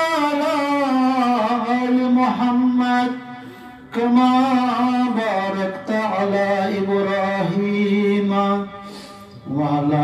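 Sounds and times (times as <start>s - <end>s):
man chanting: 0.0s - 10.0s.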